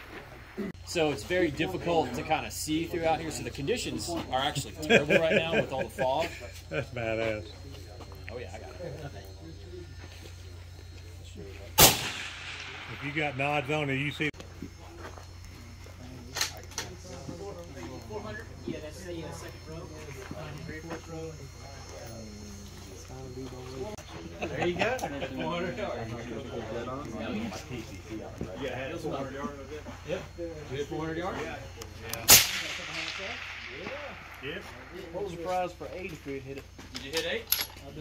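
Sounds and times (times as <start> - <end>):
people talking indistinctly: 0.0 - 38.0
rifle shot with echo: 11.8 - 13.6, 32.3 - 34.4.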